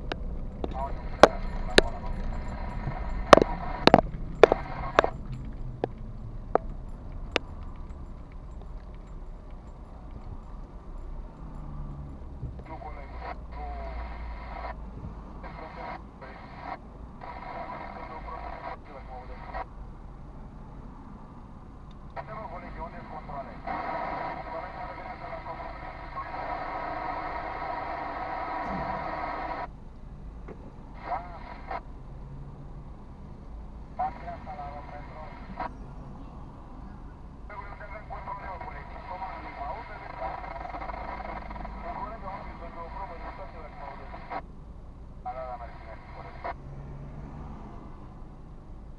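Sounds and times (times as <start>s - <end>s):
low car cabin rumble: 0.0s - 15.7s
voice over car speakers: 0.6s - 5.2s, 12.6s - 14.8s, 15.4s - 19.6s, 22.2s - 27.4s, 28.4s - 29.6s, 31.0s - 31.8s, 34.0s - 36.3s, 37.5s - 44.4s, 45.2s - 46.6s.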